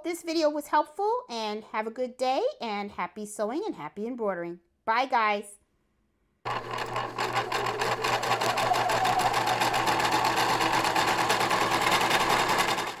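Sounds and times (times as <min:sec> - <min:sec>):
sewing machine stitching: 0:06.5 - 0:13.0.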